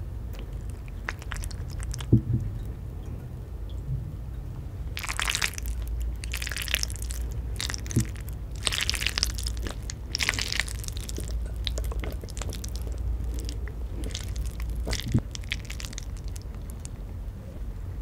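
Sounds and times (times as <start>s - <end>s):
crunchy chewing of food: 0.3s - 2.2s, 4.9s - 17.1s.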